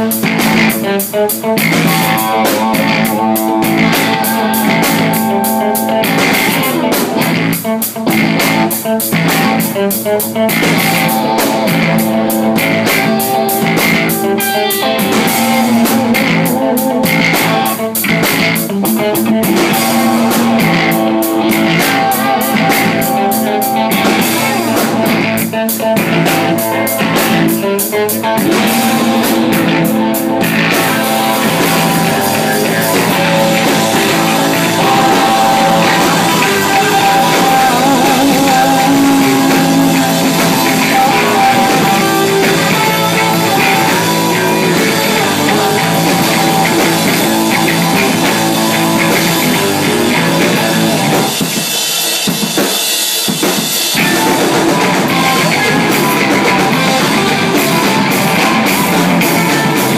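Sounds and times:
drum kit with cymbal hits: 0.0 - 59.9
electric guitars: 0.0 - 59.9.

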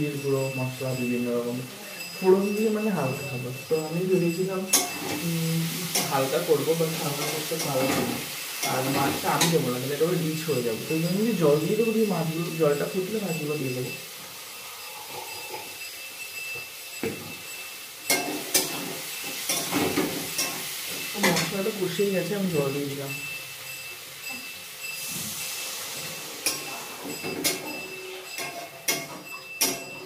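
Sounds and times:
man talking: 0.0 - 4.7, 6.0 - 14.0, 21.5 - 23.2
food sizzling in a pan: 0.1 - 30.0.

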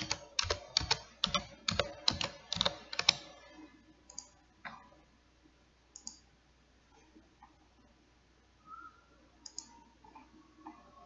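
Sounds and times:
computer mouse clicks: 0.0 - 3.3, 4.1 - 4.4, 5.9 - 6.3, 9.4 - 10.8.

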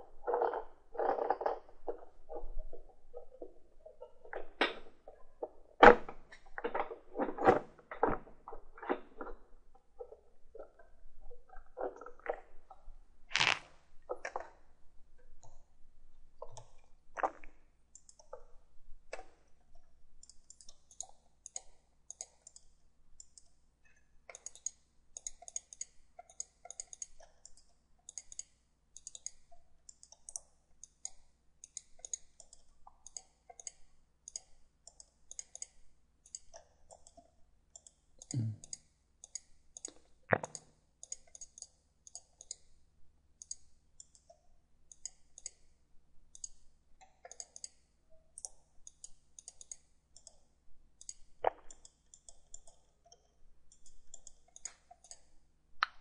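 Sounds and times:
computer mouse clicking: 16.4 - 42.8, 43.4 - 45.7, 46.3 - 56.0.

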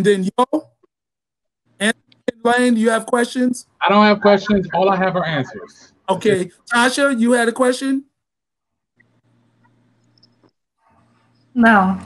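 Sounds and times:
low steady hum: 1.8 - 8.1.

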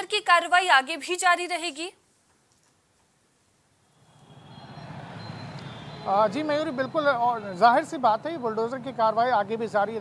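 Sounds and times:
street traffic noise: 3.6 - 10.0.

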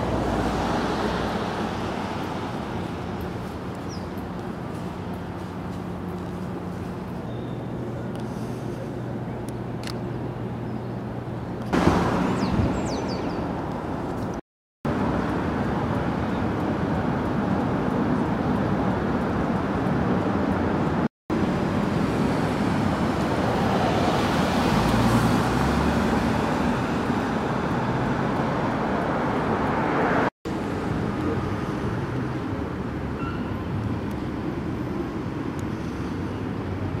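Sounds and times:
cars driving by: 0.0 - 10.6, 11.2 - 37.0
vehicle passing close: 21.5 - 30.3.

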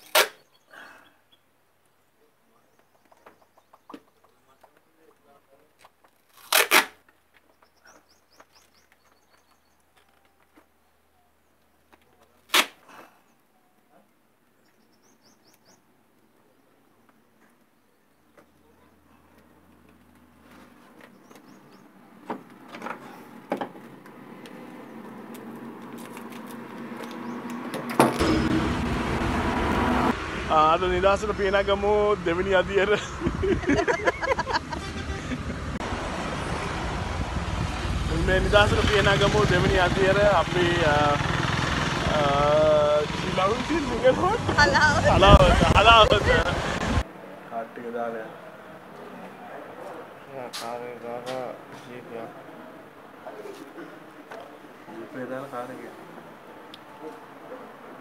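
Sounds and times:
small bird chirping: 0.3 - 4.6, 7.4 - 12.3, 13.3 - 15.9
rumble of passing vehicles: 18.2 - 58.0.

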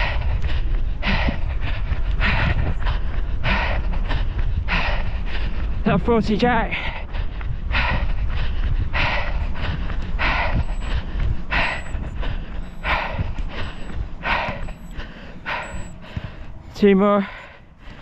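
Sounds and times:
person breathing hard: 0.0 - 5.9, 6.6 - 18.0
low microphone rumble: 0.0 - 18.0.

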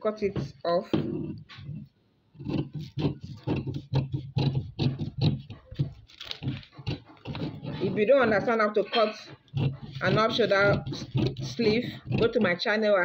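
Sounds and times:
scissors snipping paper: 2.5 - 8.6.

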